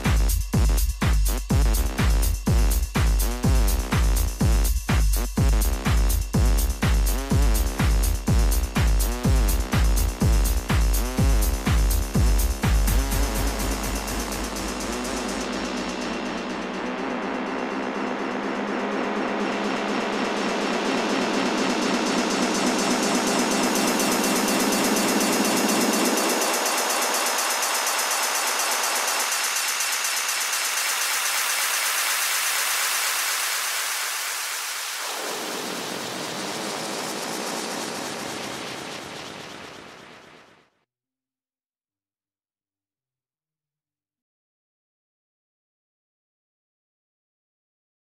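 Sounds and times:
house music bass: 0:00.0 - 0:32.8, 0:34.2 - 0:38.5
synthesized noise sweep: 0:00.0 - 0:40.8.

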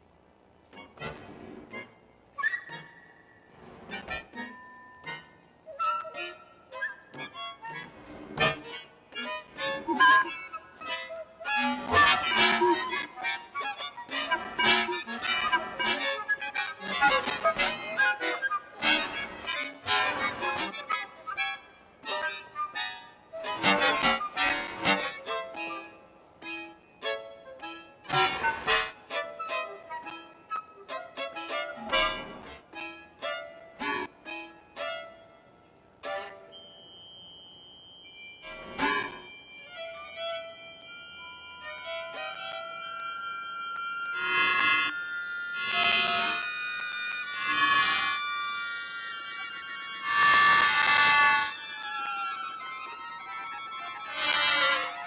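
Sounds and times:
button accordion: 0:00.7 - 0:02.1, 0:03.5 - 0:35.3, 0:38.1 - 0:55.0
flute: 0:00.7 - 0:35.3, 0:36.0 - 0:55.0
violin: 0:00.7 - 0:36.7, 0:38.1 - 0:55.0.

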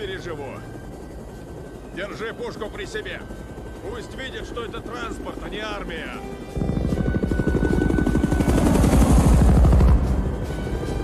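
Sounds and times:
film score music: 0:00.0 - 0:11.0
helicopter rotors chopping: 0:00.0 - 0:11.0.

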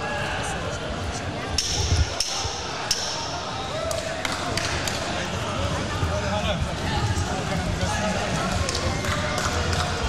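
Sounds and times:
indistinct voices echoing: 0:01.6 - 0:08.6.

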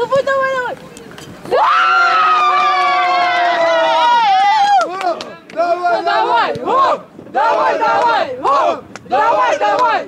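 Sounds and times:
football supporters chanting: 0:05.6 - 0:10.0.

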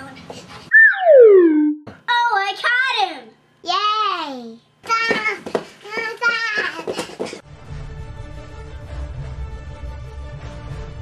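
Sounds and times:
falling whistle glide: 0:00.7 - 0:01.8
child talking or singing: 0:02.1 - 0:06.9.

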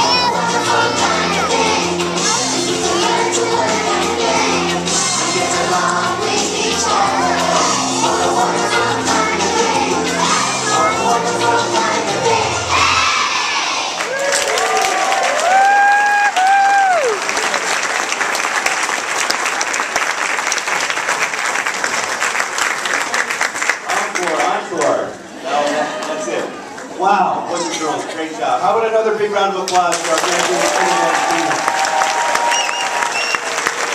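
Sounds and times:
children singing: 0:00.0 - 0:14.0
crowd applauding and cheering: 0:13.8 - 0:24.6, 0:29.8 - 0:33.9
high whoops: 0:14.0 - 0:17.2, 0:30.6 - 0:33.5.

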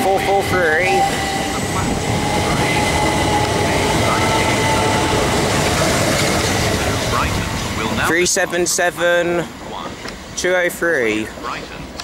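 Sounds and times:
train wheels rushing on rails: 0:00.0 - 0:12.0.

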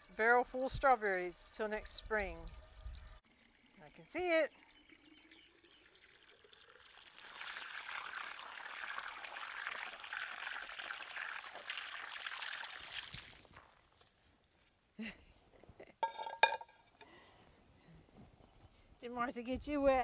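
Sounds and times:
hose water splashing on soil: 0:03.4 - 0:14.2.

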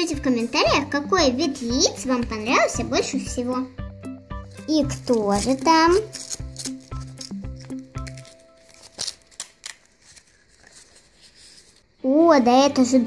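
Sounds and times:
light background music: 0:00.0 - 0:13.0
paper rustling and crinkling: 0:04.5 - 0:11.9
sharp paper clicks: 0:04.9 - 0:11.8.

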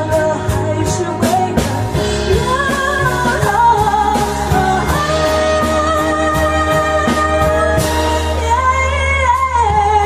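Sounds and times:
band with guitar and beat: 0:00.0 - 0:10.0
woman singing pop song: 0:00.0 - 0:10.0.

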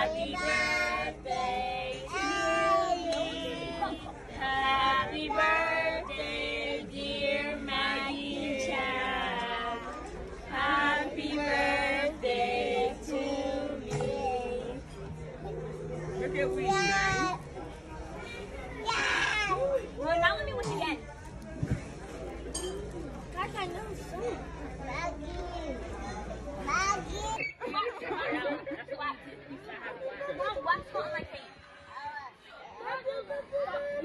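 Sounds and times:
indistinct voices chattering: 0:00.0 - 0:34.0
low background hum: 0:00.0 - 0:34.0.

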